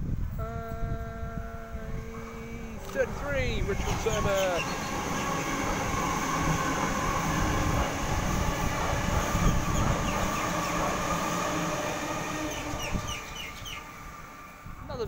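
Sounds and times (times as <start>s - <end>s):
electric hum: 0.4s - 10.9s
train wheels rumbling on rails: 0.8s - 15.0s.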